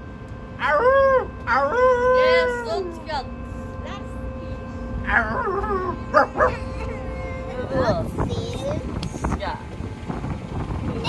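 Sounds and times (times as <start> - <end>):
steady hum: 0.0 - 11.0
wind rumble on microphone: 0.0 - 11.0
person making howl-like calls: 5.1 - 7.5.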